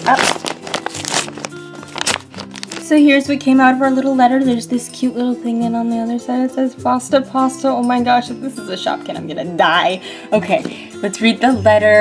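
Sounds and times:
paper envelope tearing: 0.0s - 2.9s
background music: 0.0s - 12.0s.

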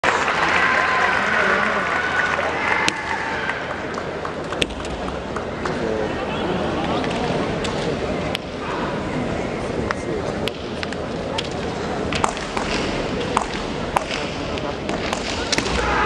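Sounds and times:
arena hubbub: 0.0s - 16.0s.

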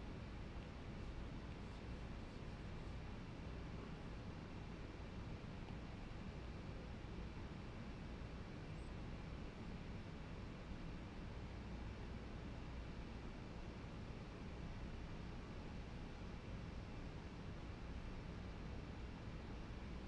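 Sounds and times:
low hum with hiss: 0.0s - 20.0s.

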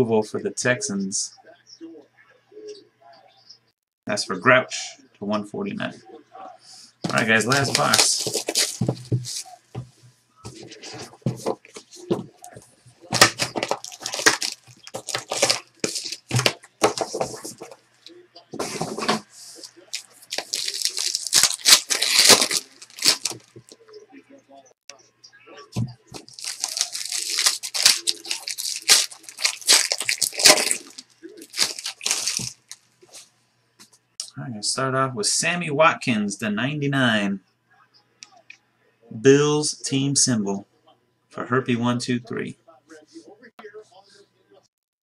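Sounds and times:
plastic and foil wrapping crinkling: 7.1s - 9.6s, 10.5s - 23.8s, 26.0s - 33.3s.

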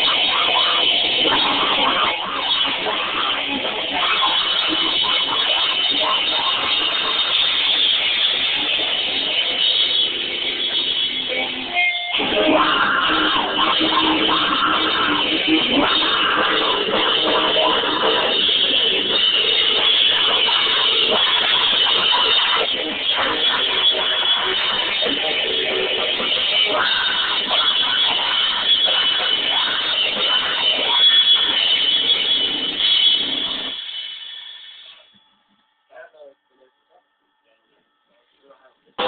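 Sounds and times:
grindcore band playing: 0.0s - 34.3s
distorted electric guitar: 0.0s - 35.3s, 35.9s - 39.0s.

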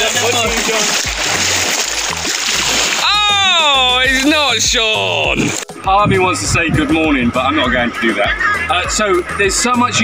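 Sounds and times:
small waves washing on shore: 0.0s - 4.4s.

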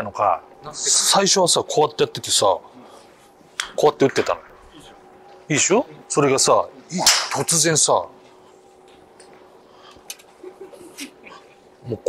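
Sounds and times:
man speaking: 3.7s - 8.2s.

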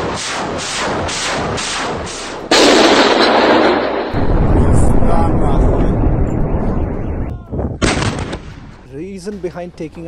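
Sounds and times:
loud blast: 0.0s - 8.6s
explosions and shelling rumbling: 0.0s - 8.8s.

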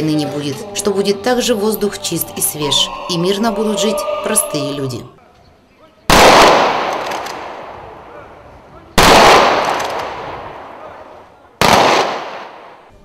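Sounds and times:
rifle volleys with echo: 6.1s - 7.8s, 9.0s - 10.9s, 11.6s - 12.8s.

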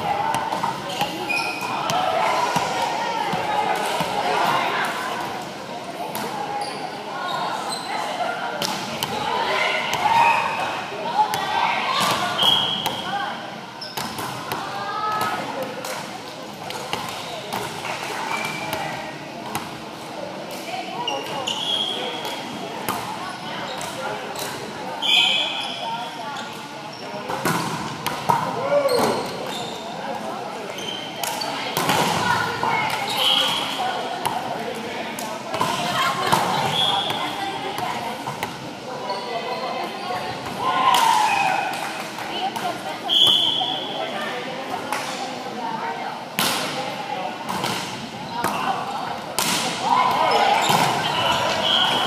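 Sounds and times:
players' voices echoing: 0.0s - 52.0s
sneakers squeaking on floor: 0.8s - 2.0s, 6.6s - 8.1s, 17.0s - 17.6s, 18.2s - 18.8s, 21.1s - 22.2s, 23.6s - 27.2s, 28.8s - 30.0s, 30.7s - 31.6s, 39.0s - 40.3s, 50.2s - 52.0s
volleyball being hit and bounced: 47.5s - 48.7s, 49.3s - 51.6s.

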